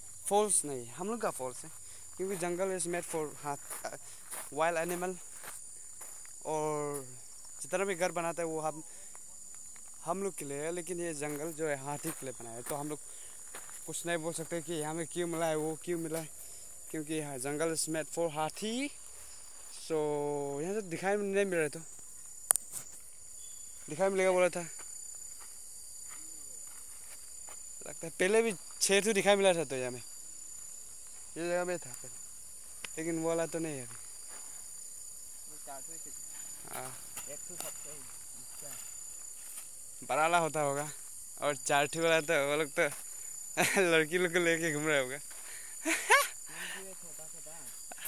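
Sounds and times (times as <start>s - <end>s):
crickets chirring: 0.0s - 48.0s
high-pitched insect chorus: 0.0s - 48.0s.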